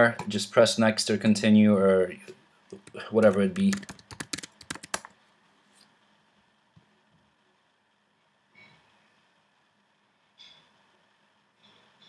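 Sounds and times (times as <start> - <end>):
computer keyboard typing: 2.8 - 5.1.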